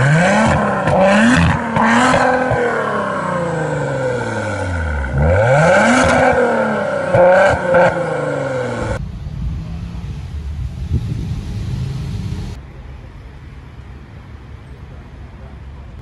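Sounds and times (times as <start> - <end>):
car engine idling: 0.0 - 16.0.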